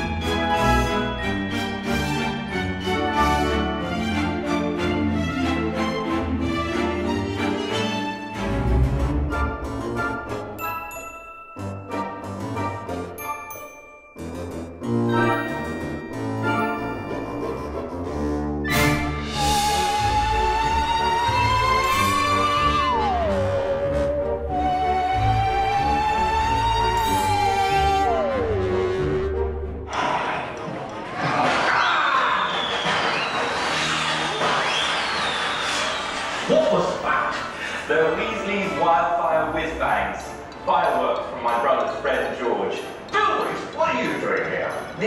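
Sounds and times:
orchestral music: 0.0s - 31.7s, 32.5s - 45.0s.

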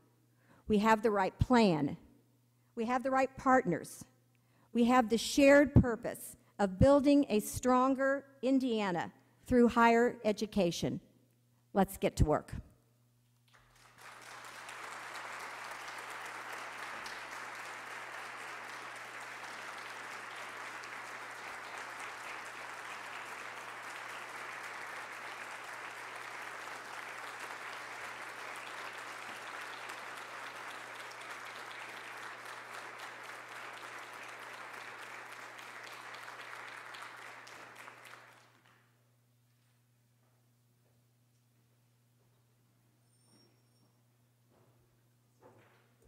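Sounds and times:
audience applauding: 13.5s - 38.8s.

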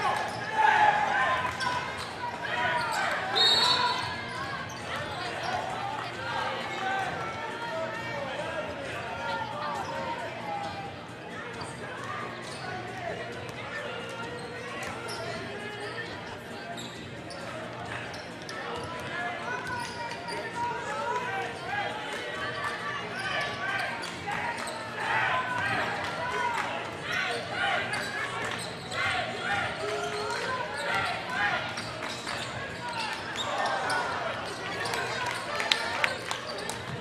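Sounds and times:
voices talking and calling out: 0.0s - 37.0s.

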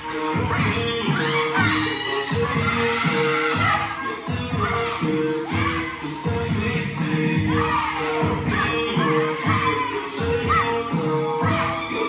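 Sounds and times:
reggaeton dance track: 0.0s - 12.0s.

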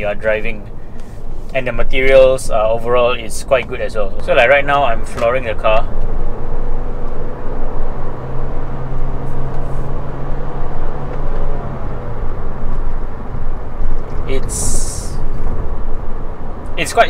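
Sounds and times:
car engine drone: 0.0s - 17.0s
road and tyre noise: 0.0s - 17.0s.

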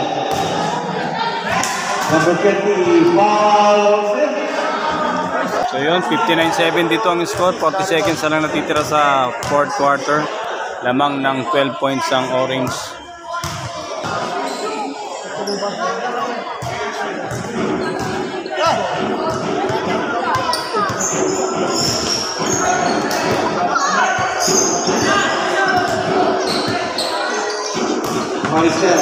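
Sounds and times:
voices of players and spectators: 0.0s - 29.0s
basketball bouncing on court: 13.4s - 14.2s, 16.6s - 18.3s, 18.9s - 23.6s.

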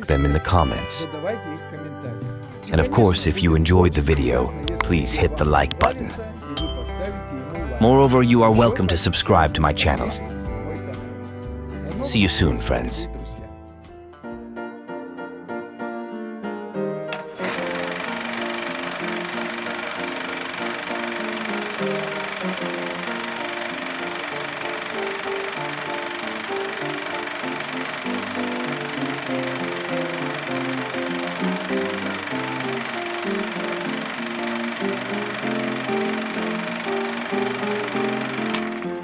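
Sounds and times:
low melodic background music: 0.0s - 39.0s.

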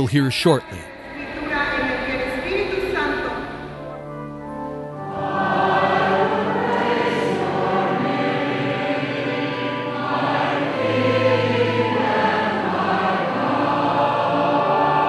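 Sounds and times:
cantor and congregation singing: 0.0s - 15.0s.

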